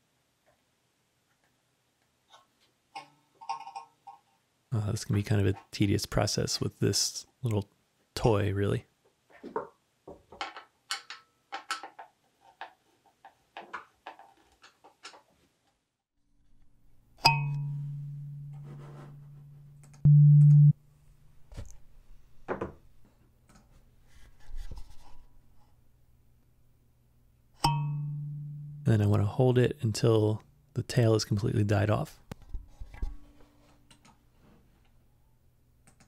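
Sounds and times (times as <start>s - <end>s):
kalimba tine plucked and ringing: 17.2s - 18.6s, 27.6s - 28.9s
steady reference tone: 17.2s - 20.8s, 27.6s - 29.2s.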